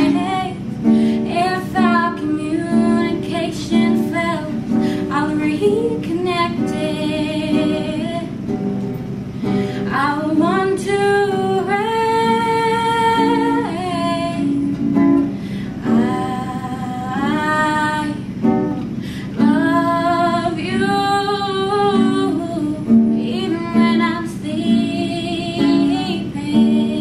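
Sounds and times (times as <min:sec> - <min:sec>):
woman singing with vibrato: 0:00.0 - 0:08.5, 0:09.8 - 0:27.0
plucked acoustic guitar: 0:00.0 - 0:27.0.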